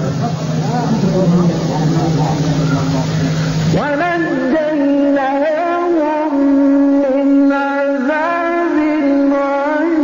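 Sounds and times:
crowd voices: 0.0s - 6.2s
man reciting melodically: 0.0s - 10.0s
steady low held tone: 0.0s - 10.0s.

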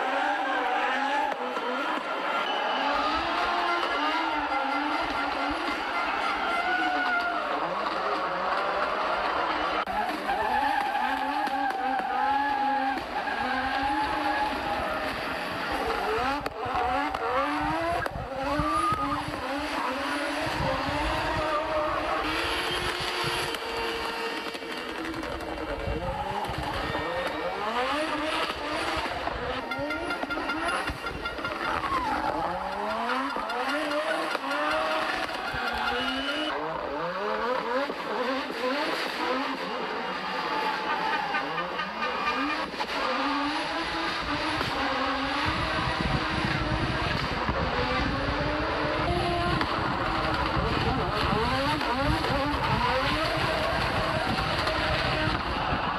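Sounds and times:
rally car engine revving hard: 0.0s - 55.9s.

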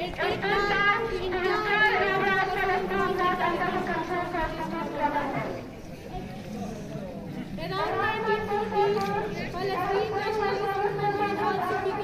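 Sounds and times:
woman speaking into a microphone: 0.0s - 5.7s, 7.6s - 12.0s.

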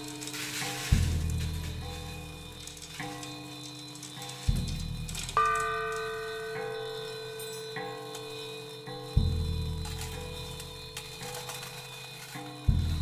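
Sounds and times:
ringing drone: 0.0s - 13.0s.

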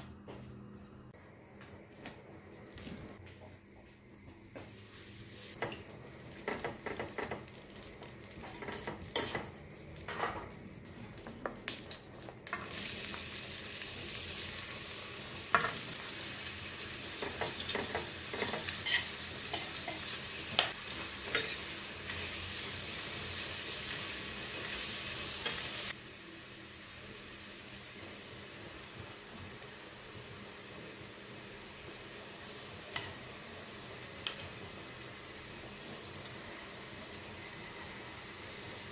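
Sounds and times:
onions sizzling in butter: 4.9s - 38.9s
spatula scraping frying pan: 17.7s - 20.1s.

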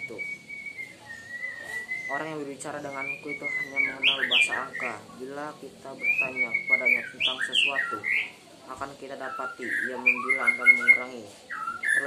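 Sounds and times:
high whistling tone: 0.0s - 4.0s.

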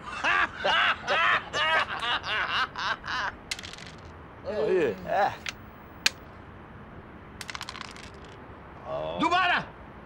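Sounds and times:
dice clattering on board: 3.5s - 4.1s, 7.4s - 8.4s.

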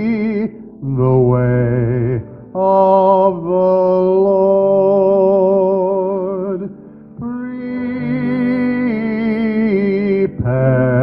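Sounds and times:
low voice singing with vibrato: 0.0s - 11.0s.

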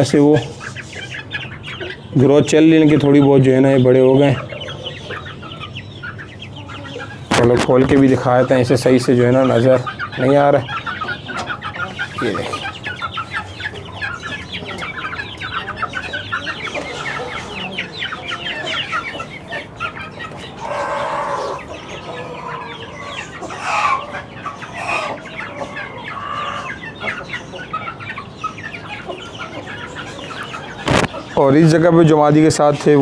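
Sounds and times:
chicks clucking and peeping: 0.0s - 33.0s.

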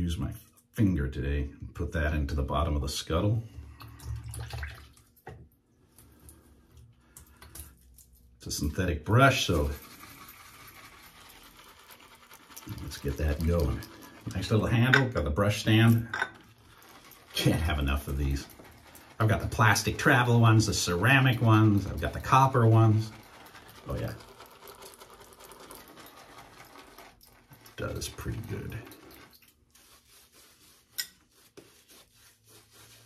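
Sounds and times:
man speaking: 8.4s - 9.8s, 12.7s - 16.1s, 17.3s - 18.5s, 19.2s - 23.2s, 23.8s - 24.2s, 27.8s - 28.9s
shaving brush rubbing in ceramic bowl: 9.3s - 33.0s.

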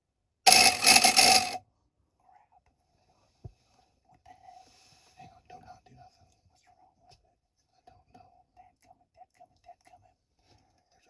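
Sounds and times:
faint whispered speech: 2.2s - 3.4s, 4.1s - 11.0s.

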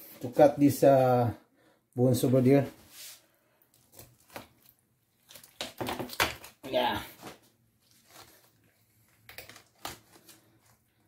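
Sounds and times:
knife cutting fish and bone: 3.7s - 6.3s.

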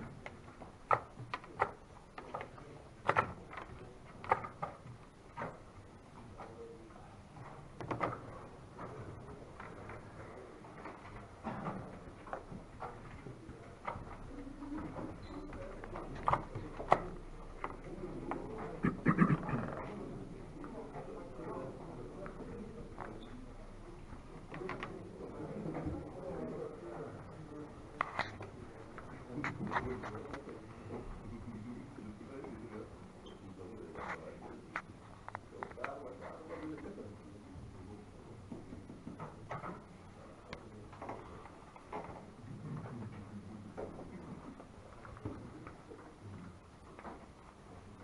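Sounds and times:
low murmur: 8.3s - 39.0s.

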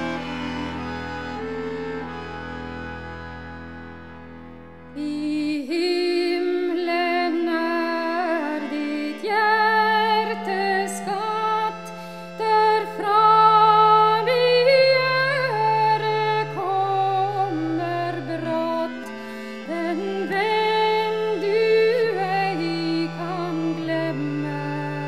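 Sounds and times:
accordion folk melody: 0.0s - 25.0s.

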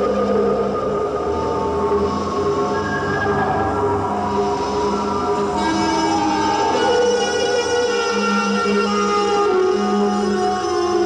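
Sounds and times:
sustained synthesizer tones: 0.0s - 11.0s.

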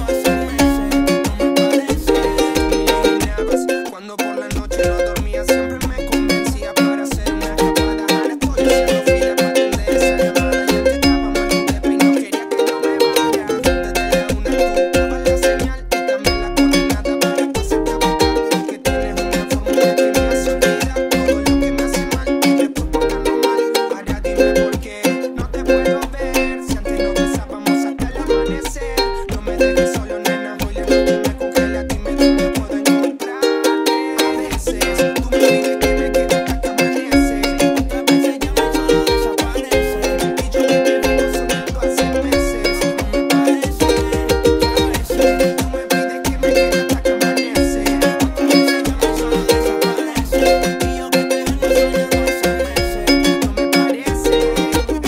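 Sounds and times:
ukulele strumming: 0.0s - 55.0s.

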